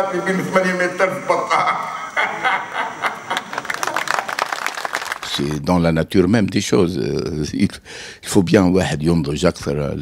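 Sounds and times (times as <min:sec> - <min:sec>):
audience laughing: 0:01.1 - 0:04.4
audience clapping: 0:03.1 - 0:05.6.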